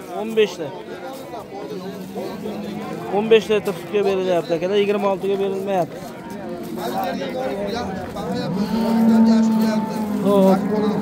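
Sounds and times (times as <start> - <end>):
men's voices: 0.0 - 11.0
cow mooing: 8.2 - 11.0.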